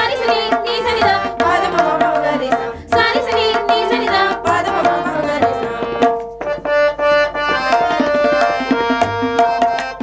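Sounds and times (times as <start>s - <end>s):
women singing devotional song: 0.0s - 6.1s
harmonium: 0.0s - 10.0s.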